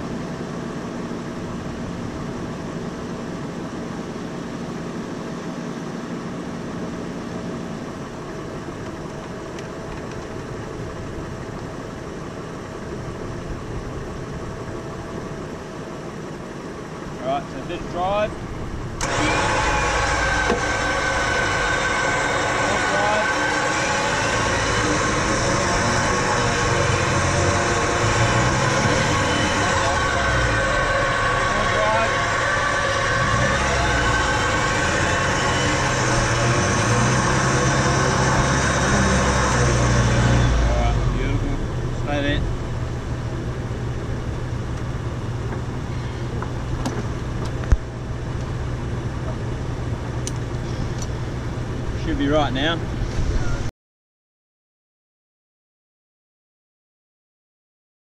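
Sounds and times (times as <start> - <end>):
engine hum: 0.0 - 53.7
electric winch motor whining: 17.4 - 46.8.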